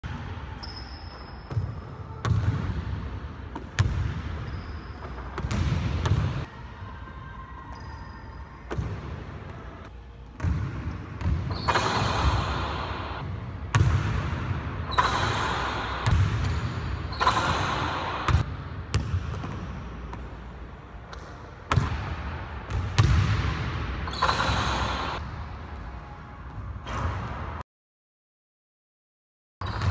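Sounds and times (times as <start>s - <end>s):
basketballs bouncing on hardwood floor: 3.6s - 6.5s.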